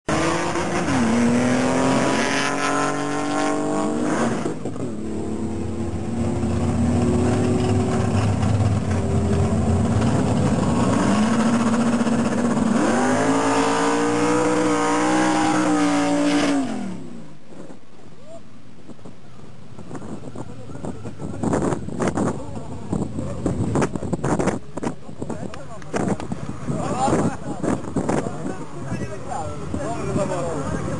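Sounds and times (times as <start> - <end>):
car engine revving: 0.1 - 17.2.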